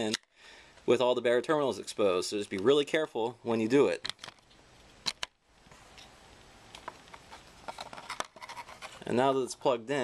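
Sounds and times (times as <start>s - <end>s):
plastic clicks and rattles: 4.0s - 5.4s, 6.8s - 9.0s.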